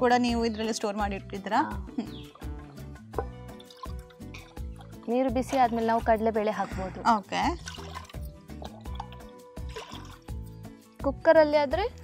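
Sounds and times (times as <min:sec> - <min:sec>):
background music with steady beat: 0:00.0 - 0:12.0
faint liquid sounds: 0:02.2 - 0:10.5.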